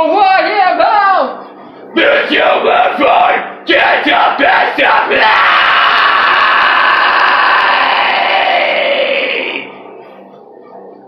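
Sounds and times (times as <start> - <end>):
man screaming metal vocals: 2.0 - 9.7.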